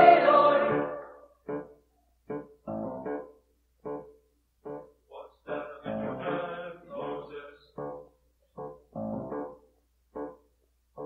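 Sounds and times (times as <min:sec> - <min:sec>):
choir singing: 0:00.0 - 0:01.3.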